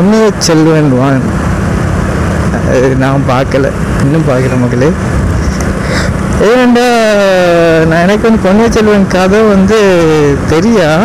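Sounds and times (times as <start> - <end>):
motorcycle wind and road noise: 0.0 - 11.0.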